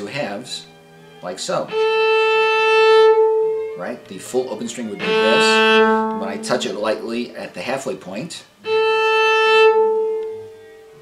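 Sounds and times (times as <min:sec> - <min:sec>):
cello harmonic bowed: 0:00.0 - 0:07.9, 0:08.5 - 0:11.0.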